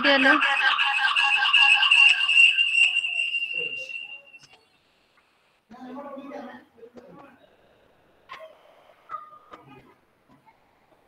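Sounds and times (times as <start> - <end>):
high-pitched feedback whistle: 1.7 - 4.8.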